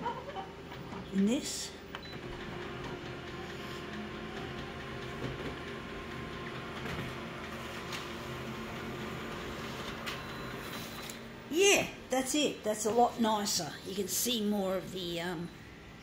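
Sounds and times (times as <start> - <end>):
copier printing hum: 0.0 - 11.5, 12.1 - 16.0.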